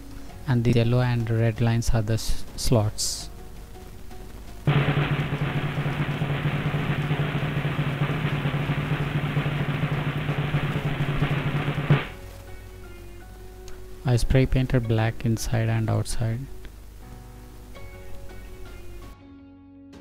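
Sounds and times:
faint background music: 0.0 - 20.0
drum roll: 4.7 - 12.2.

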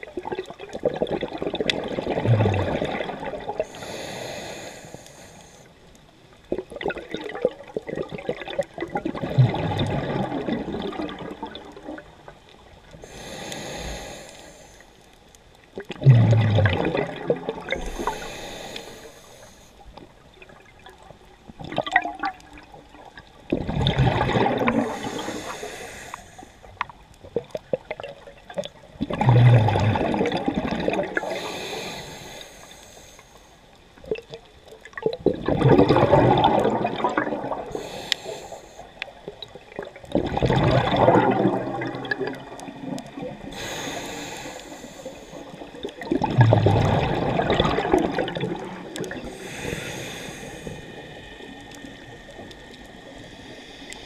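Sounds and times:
exhaled bubbles gurgling: 0.0 - 5.7, 6.3 - 33.1, 33.8 - 54.0
regulator inhaling hiss: 3.6 - 5.9, 13.0 - 15.1, 17.7 - 19.9, 24.7 - 26.8, 31.1 - 33.8, 37.7 - 39.3, 42.7 - 45.8, 49.1 - 54.0.

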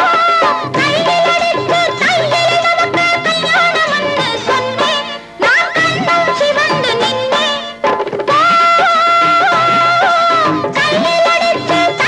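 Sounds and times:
instrumental film song melody: 0.0 - 12.0.

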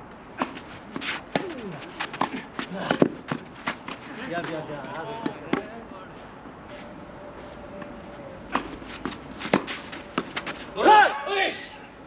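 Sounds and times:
tennis ball knocks: 8.5 - 10.5.

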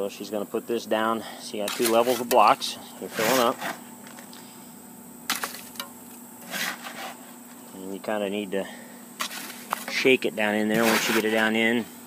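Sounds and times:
wet concrete scraping and dropping: 5.3 - 7.1, 9.2 - 10.1, 10.7 - 11.6.

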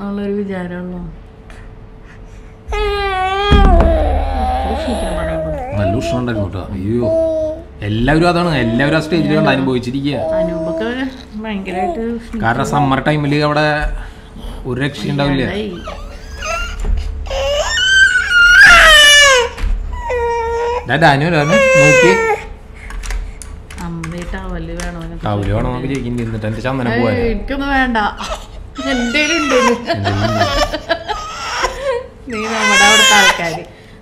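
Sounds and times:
child crying: 2.7 - 7.6, 8.5 - 11.1, 15.7 - 20.8, 21.4 - 22.4, 28.8 - 33.5
loud low rumble: 3.4 - 6.0.

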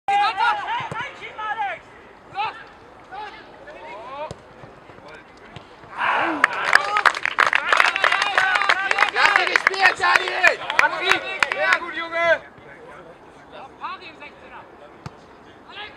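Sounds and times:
people shouting: 5.9 - 6.9.

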